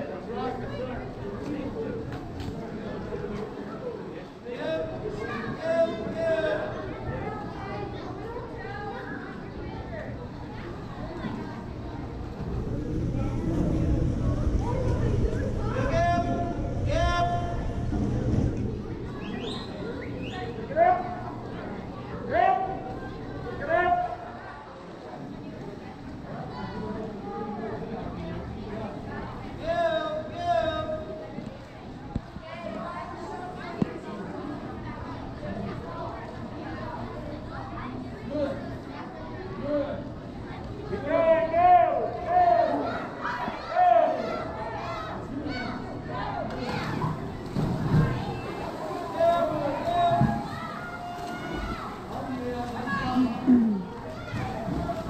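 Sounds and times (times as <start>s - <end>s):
crowd voices: 0.0s - 55.0s
echoing indoor pool hubbub: 0.0s - 55.0s
young voices shouting and cheering: 37.6s - 55.0s.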